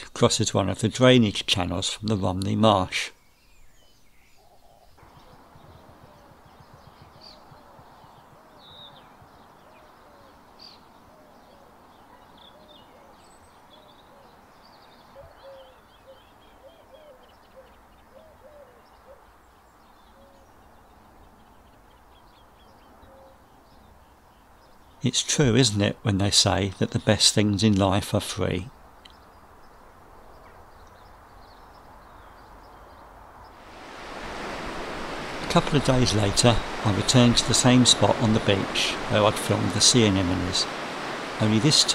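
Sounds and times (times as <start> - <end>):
birds chirping and twittering: 1.6 - 25.1, 26.5 - 41.9.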